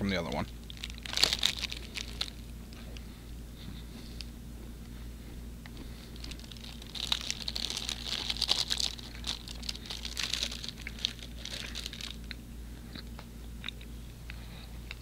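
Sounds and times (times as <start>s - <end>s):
steady low hum: 0.0s - 15.0s
sticky mouth clicks and smacks: 12.2s - 15.0s.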